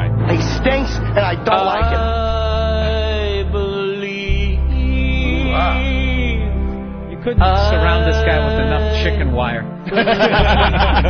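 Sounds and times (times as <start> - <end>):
slow ballad: 0.0 - 11.0
steady low bass: 0.0 - 11.0
person singing long notes: 1.4 - 6.5, 7.2 - 9.5.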